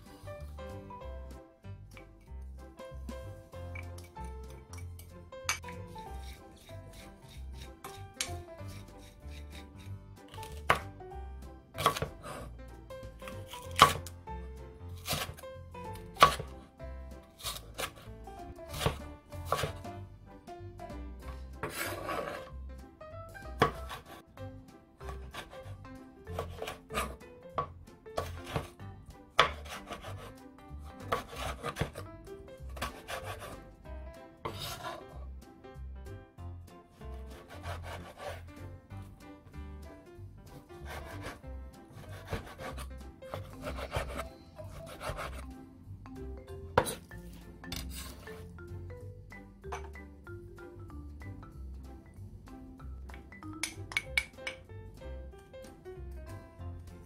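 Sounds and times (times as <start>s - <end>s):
knife chopping on wooden board: 3.8s - 11.0s, 11.8s - 12.5s, 13.2s - 14.2s, 14.9s - 15.4s, 16.0s - 16.6s, 17.3s - 18.1s, 18.7s - 19.9s, 21.6s - 22.5s, 23.6s - 24.2s, 25.0s - 30.4s, 31.0s - 32.1s, 32.7s - 33.7s, 34.4s - 35.1s, 37.3s - 38.5s, 40.8s - 45.4s, 46.8s - 47.1s.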